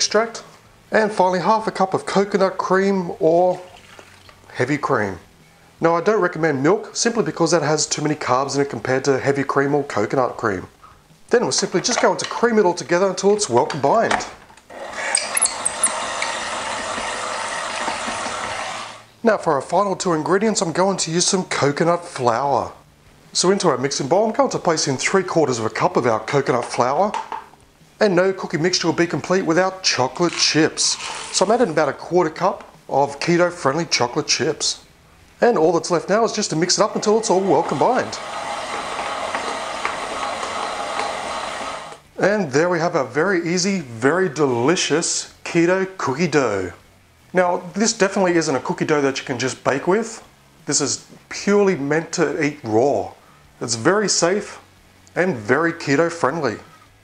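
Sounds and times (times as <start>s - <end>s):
electric stand mixer whirring: 14.7s - 19.1s, 37.0s - 42.0s.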